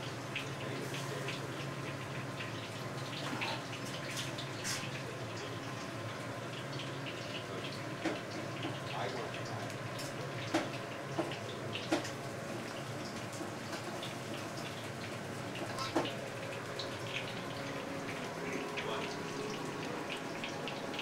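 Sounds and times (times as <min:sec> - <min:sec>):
cutlets sizzling in oil: 0:00.0 - 0:21.0.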